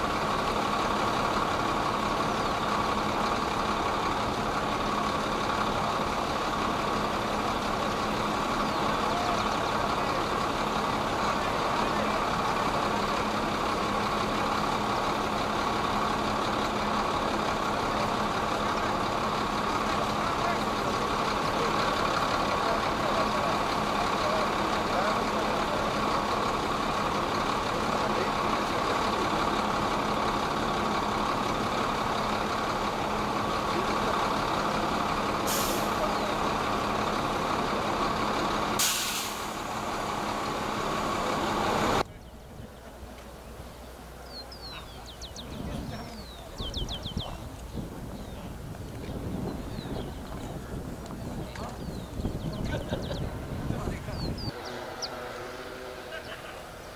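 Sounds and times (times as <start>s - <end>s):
heavy vehicle engine running: 0.0s - 56.9s
short hisses: 35.4s - 36.0s, 38.8s - 39.6s.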